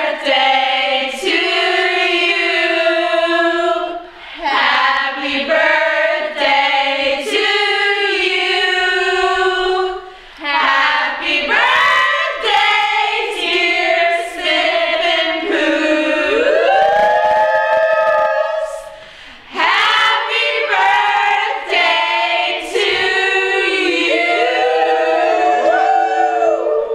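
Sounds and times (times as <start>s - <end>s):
women singing a cappella: 0.0s - 26.9s.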